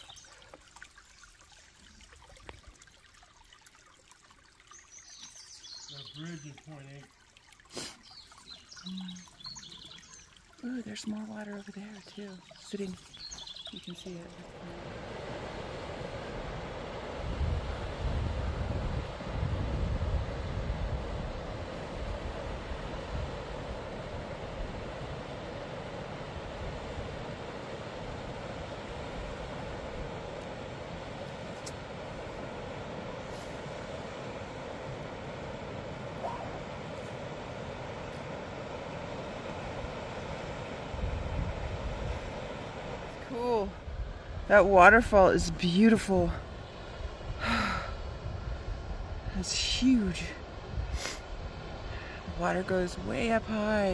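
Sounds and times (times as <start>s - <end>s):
creek flowing over rocks: 0.0s - 15.0s
wind buffeting microphone: 14.6s - 53.9s.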